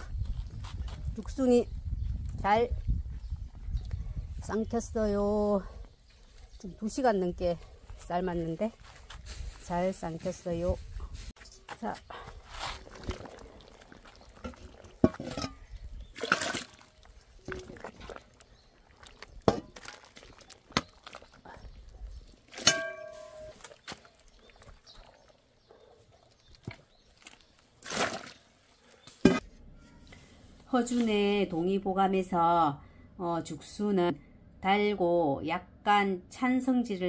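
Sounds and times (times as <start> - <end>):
water splashing and dripping: 12.8 - 28.6.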